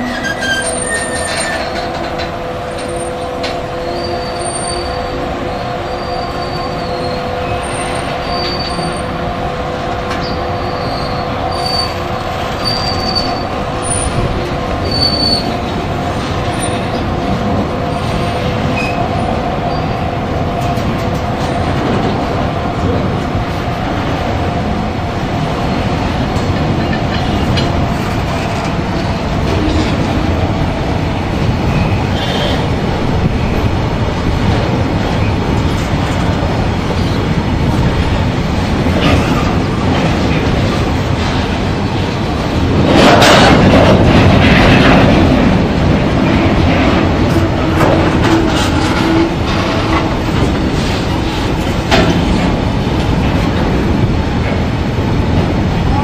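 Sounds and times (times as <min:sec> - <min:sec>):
wheels squealing: 0:00.0 - 0:02.2
train wheels rumbling on rail: 0:00.0 - 0:56.0.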